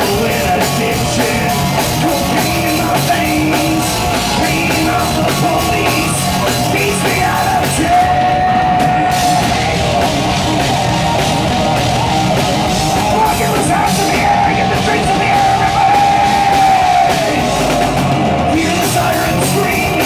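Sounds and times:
live heavy rock band: 0.0s - 20.0s.

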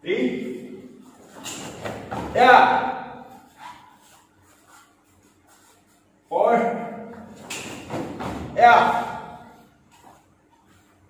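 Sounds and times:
man shouting in echoing hall: 2.2s - 3.5s, 6.3s - 7.1s, 8.4s - 9.6s.

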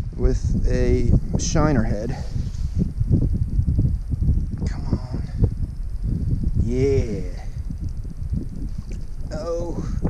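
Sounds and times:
wind buffeting microphone: 0.0s - 10.0s
faint fast high ticking: 2.8s - 10.0s.

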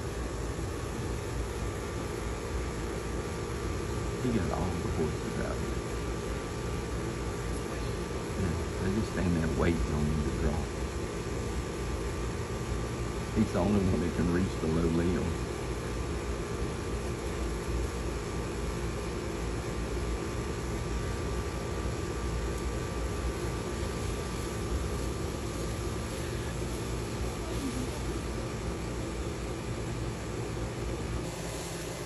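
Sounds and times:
faint steady hum: 0.0s - 32.0s
even hiss: 23.5s - 28.5s.

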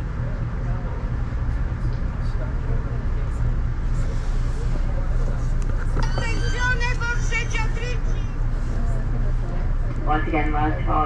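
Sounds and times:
low hum inside rail car: 0.0s - 11.0s.

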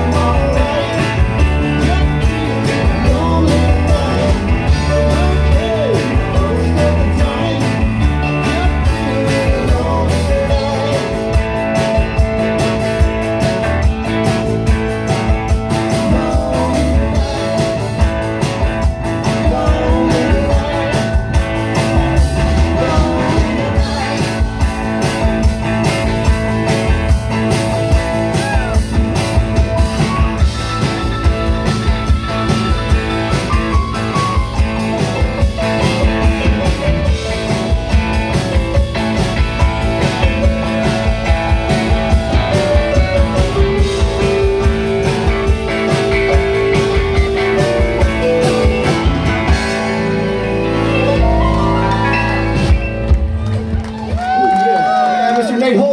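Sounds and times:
acoustic guitar: 0.0s - 54.1s
drum kit steady beat: 0.0s - 54.6s
electric guitar: 0.0s - 55.9s
keyboard: 0.0s - 55.9s.

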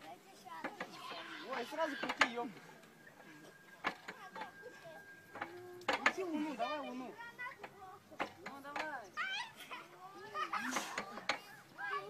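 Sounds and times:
people talking and calling out: 0.0s - 12.0s
faint steady high tone: 0.1s - 8.4s.

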